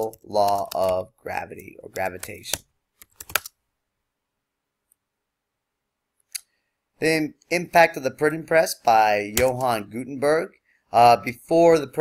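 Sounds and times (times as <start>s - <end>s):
keyboard keystrokes: 2.0s - 3.5s.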